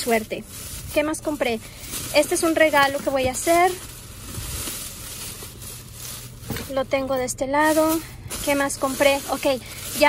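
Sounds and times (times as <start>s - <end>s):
plastic bags rustling: 0.0s - 10.0s.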